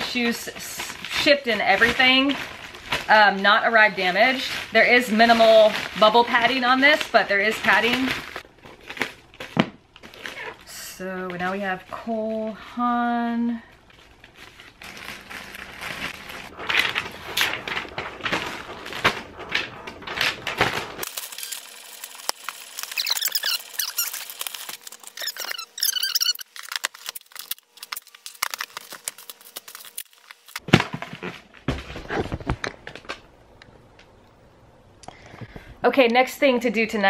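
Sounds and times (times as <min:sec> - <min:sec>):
paper rustling: 0:13.8 - 0:33.2
marker squeaking on plastic: 0:22.8 - 0:24.4, 0:25.2 - 0:26.8.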